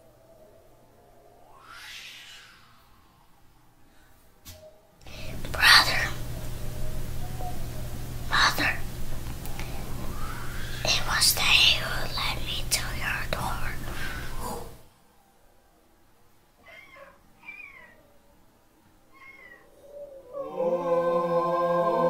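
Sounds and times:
steady low hum: 5.0 - 15.3
person whispering: 5.1 - 6.3, 8.3 - 8.8, 10.4 - 14.8
faint high cries: 10.0 - 10.9, 16.6 - 18.4, 19.0 - 20.6
choral music: 19.9 - 22.0.

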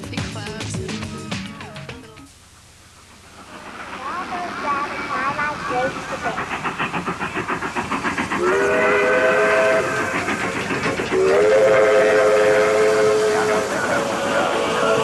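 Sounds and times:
steam locomotive chugging: 0.0 - 15.0
steam whistle blasts: 8.4 - 10.1, 11.1 - 15.0.

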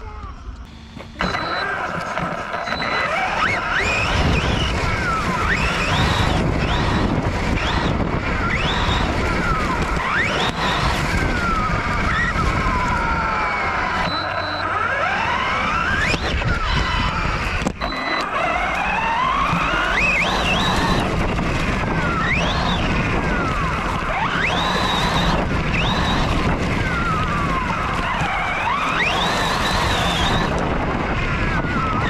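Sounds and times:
electric motor whining: 0.6 - 32.0.

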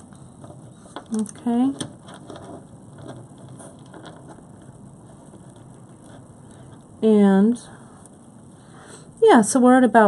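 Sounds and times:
soft handling clicks and rustles: 0.0 - 6.9.

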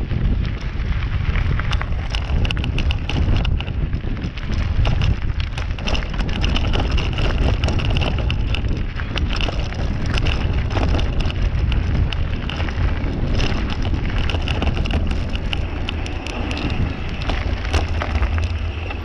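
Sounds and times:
bike rattling clicks: 0.0 - 19.0
tyres crunching on gravel: 0.0 - 19.0
wind rumbling on microphone: 0.0 - 19.0.

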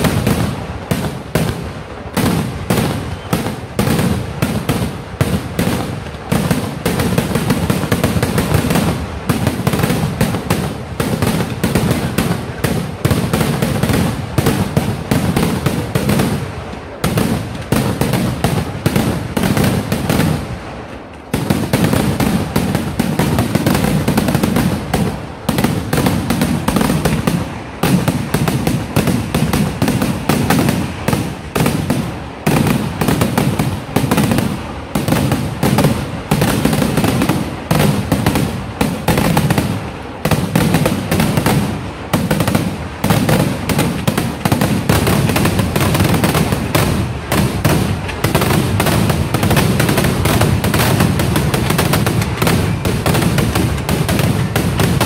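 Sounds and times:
fireworks bangs and crackling: 0.0 - 55.0.

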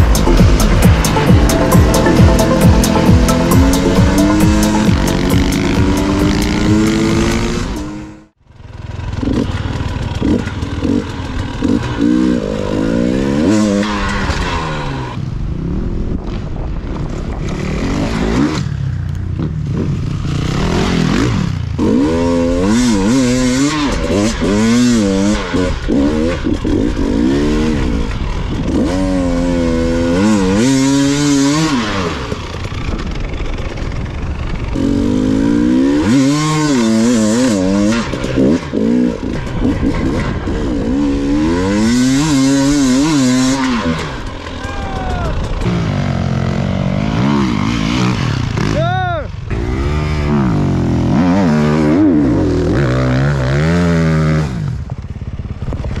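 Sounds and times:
dirt bike engine revving: 0.0 - 16.2, 16.9 - 56.0.

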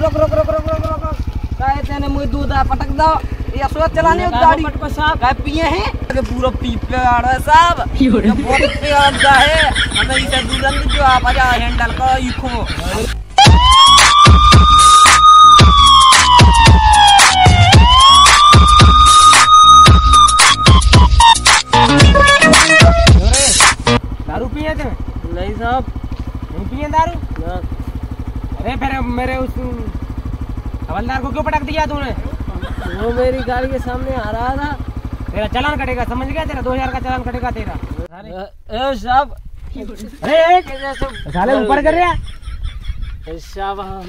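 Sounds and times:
people talking: 0.0 - 13.2, 22.0 - 23.6, 24.3 - 25.9, 26.5 - 27.7, 28.6 - 29.9, 30.9 - 42.3, 43.3 - 44.0
voices: 0.0 - 14.2, 21.8 - 44.0
scooter engine idling: 0.0 - 38.1.

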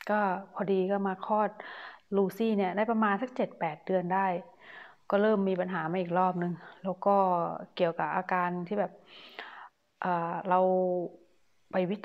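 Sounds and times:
woman breathing in: 1.6 - 2.1, 4.5 - 5.1, 9.0 - 9.8.

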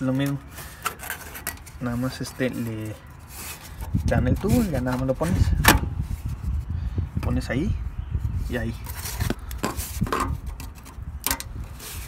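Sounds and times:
rubber hose rubbing and scraping: 0.0 - 7.4, 8.2 - 12.0.

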